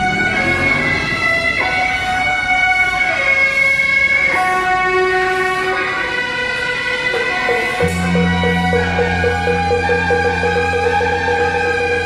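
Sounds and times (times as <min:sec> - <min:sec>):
horns playing long held notes: 0:00.0 - 0:12.0.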